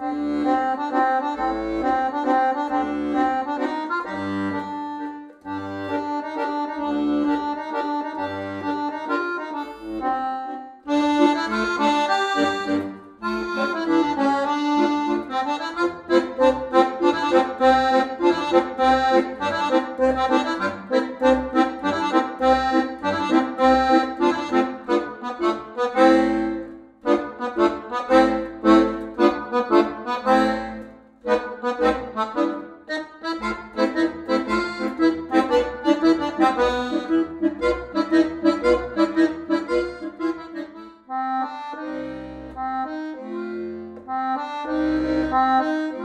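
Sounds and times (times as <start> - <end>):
solo accordion playing: 0.0 - 46.0.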